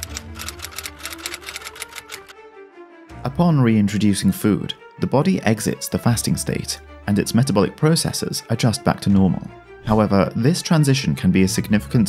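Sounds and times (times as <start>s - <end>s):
typing clicks: 0.0s - 2.4s
background music with held notes: 0.0s - 12.0s.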